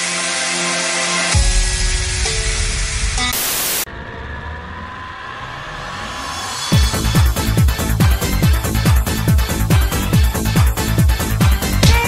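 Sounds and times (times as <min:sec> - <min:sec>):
burst of static hiss: 0:02.8 - 0:03.9.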